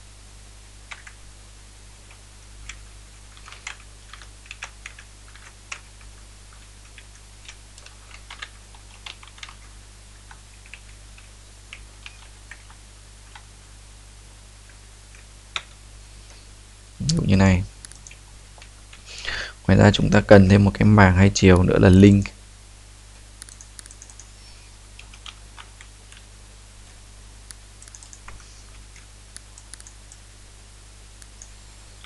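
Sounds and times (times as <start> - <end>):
typing on keyboard: 0.9 - 1.2, 3.4 - 5.9, 6.5 - 9.7, 10.3 - 13.4, 25.0 - 26.2, 27.8 - 28.4.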